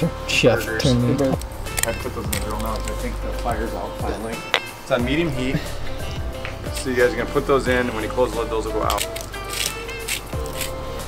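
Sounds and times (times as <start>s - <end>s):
background music with light beat: 0.0s - 11.0s.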